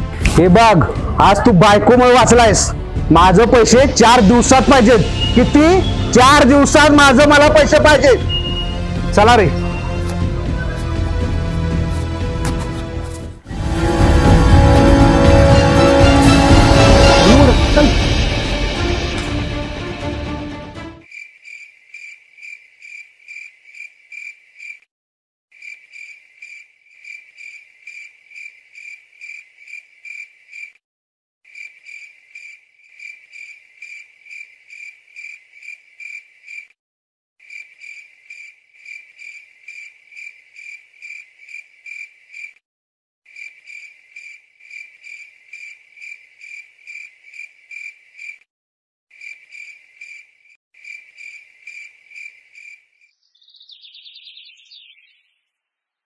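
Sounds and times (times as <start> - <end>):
bird chirping: 5.0 - 6.2, 8.2 - 8.8, 9.6 - 11.1, 49.3 - 56.0
crickets chirping: 21.0 - 24.8, 25.6 - 30.7, 31.5 - 36.7, 37.4 - 42.6, 43.3 - 48.4, 49.2 - 53.1.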